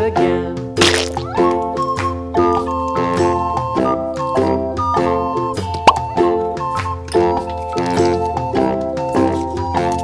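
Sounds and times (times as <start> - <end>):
bright children's music: 0.0 - 10.0
rising plop sound effect: 5.8 - 6.1.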